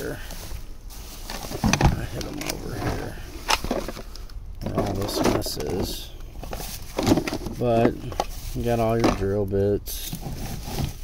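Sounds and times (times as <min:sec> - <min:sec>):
items rustling: 0:00.0 - 0:11.0.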